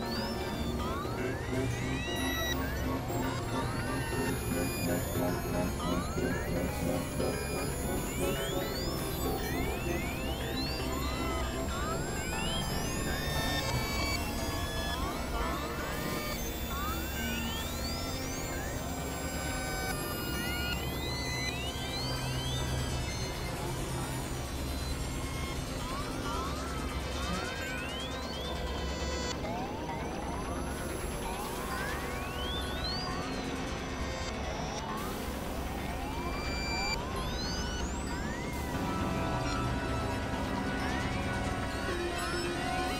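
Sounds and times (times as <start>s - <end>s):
experimental synthesizer music: 0.0s - 42.9s.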